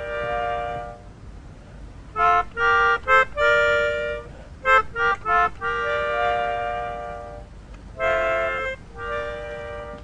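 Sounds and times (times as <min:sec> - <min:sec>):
melodica chord: 0:00.0 - 0:01.3, 0:02.1 - 0:10.0.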